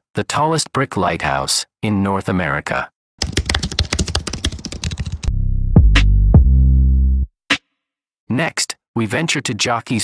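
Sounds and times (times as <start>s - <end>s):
rapid sharp clicks: 3.2s - 5.3s.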